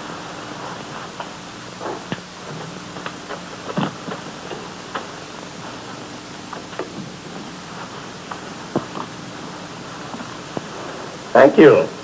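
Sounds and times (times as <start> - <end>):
recording hiss and hum: 0.0 - 12.0.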